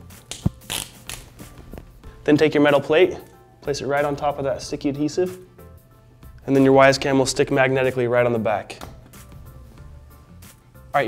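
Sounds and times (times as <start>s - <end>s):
soft background music: 0.0s - 11.0s
film liner peeling: 0.2s - 2.0s.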